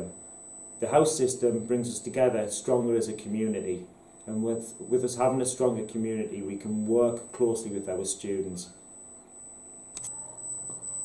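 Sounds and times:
faint low hum: 0.0 - 11.0
high-pitched electronic whine: 0.0 - 11.0
click: 9.9 - 10.2.

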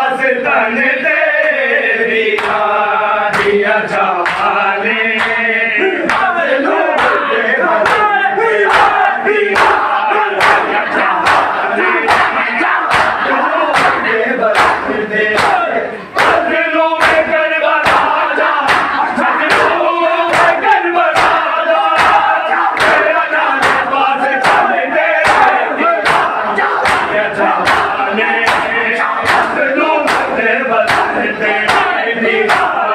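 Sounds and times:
men chanting and shouting: 0.0 - 32.9
men beating chests in unison: 2.3 - 32.9.

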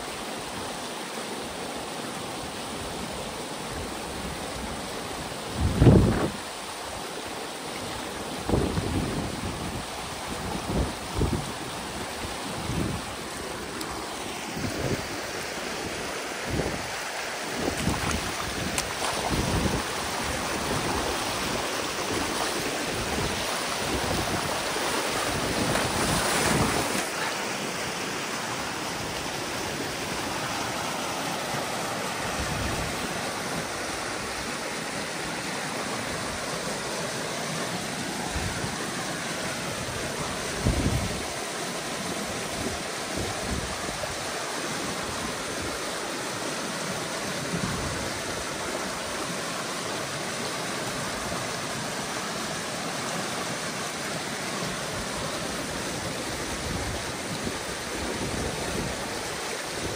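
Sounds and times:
water rushing through a gap: 0.0 - 59.9.

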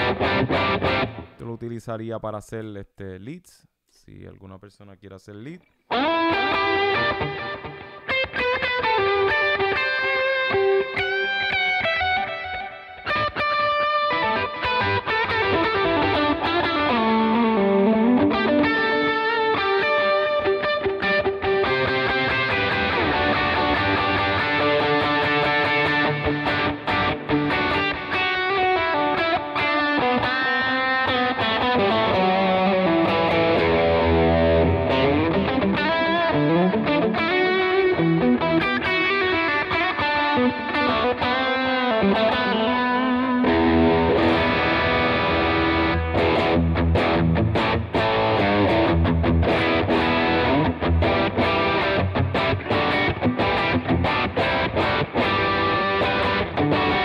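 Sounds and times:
distorted electric guitar: 0.0 - 1.4, 5.8 - 57.0.

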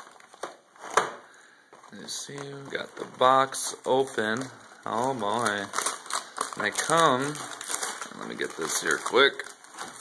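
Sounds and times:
cardboard rustling: 0.0 - 10.0.

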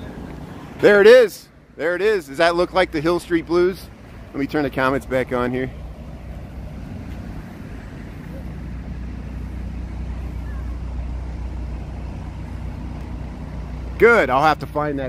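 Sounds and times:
traffic engine rumble: 0.0 - 15.0.

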